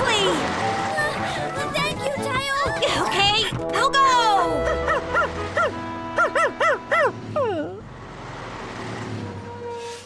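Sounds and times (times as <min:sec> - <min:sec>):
background music: 0:00.0 - 0:07.8
cartoon puppy yipping: 0:05.6 - 0:07.2.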